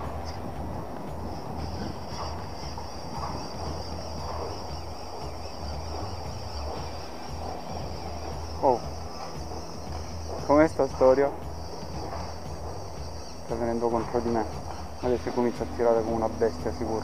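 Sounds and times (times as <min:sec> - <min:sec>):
thin high-pitched hiss: 0:00.0 - 0:17.0.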